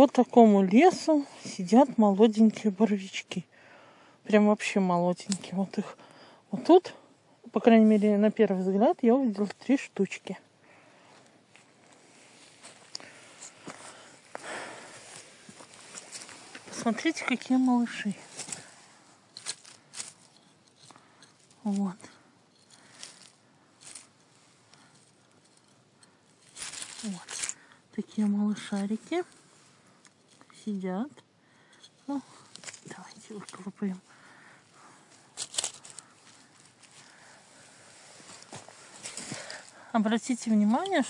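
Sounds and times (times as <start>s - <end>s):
pine needles and twigs crackling: 5.1s - 5.9s, 7.5s - 41.0s
dry leaves rustling and crunching: 14.5s - 20.3s, 22.8s - 24.2s, 26.4s - 27.6s, 35.1s - 39.7s.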